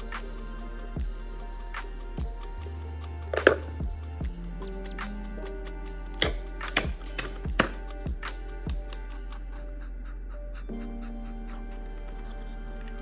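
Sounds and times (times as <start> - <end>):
soft background music: 0.0 - 13.0.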